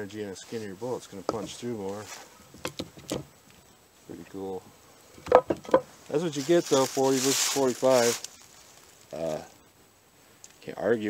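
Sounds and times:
wooden boards knocking: 5.2s - 5.9s.

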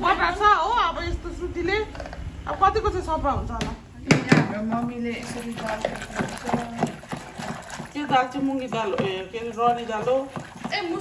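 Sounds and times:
wooden masher knocking in metal pot: 4.1s - 11.0s.

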